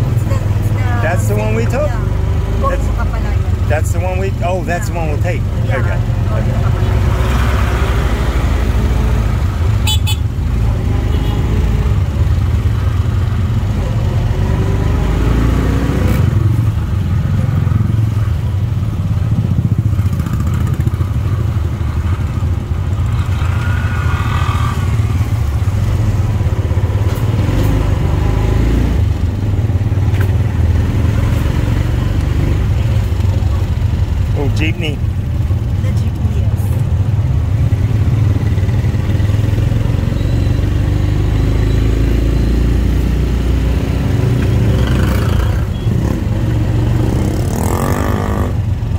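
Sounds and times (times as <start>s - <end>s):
motorcycles nearby: 0.0s - 48.9s.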